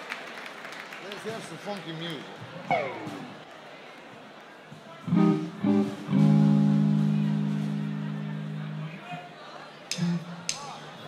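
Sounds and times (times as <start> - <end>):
electric guitar: 2.7 - 3.4, 5.1 - 9.0.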